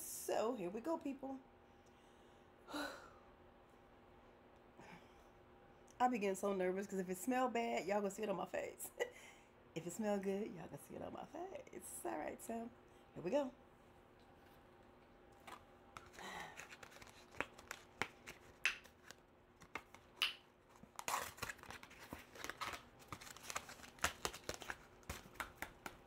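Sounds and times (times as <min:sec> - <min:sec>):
packaging rustles and clicks: 0:15.4 - 0:26.0.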